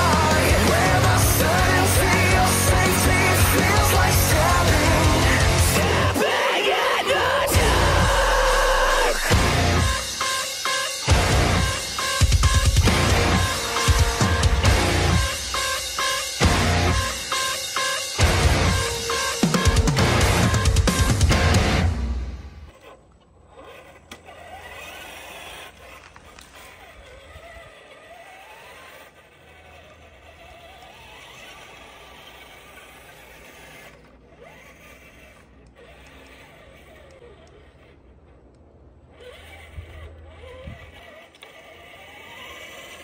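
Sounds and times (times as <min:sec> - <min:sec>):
rc truck motor whining: 0:00.0 - 0:43.0.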